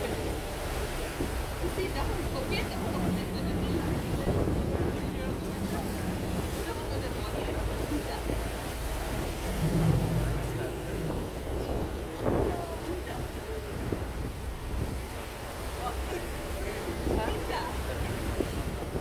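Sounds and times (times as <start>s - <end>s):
faint voices: 0.0s - 19.0s
wind buffeting microphone: 0.0s - 19.0s.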